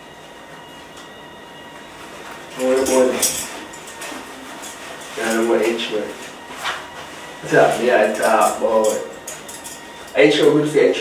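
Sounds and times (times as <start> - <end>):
faint thin whine: 0.0 - 11.0.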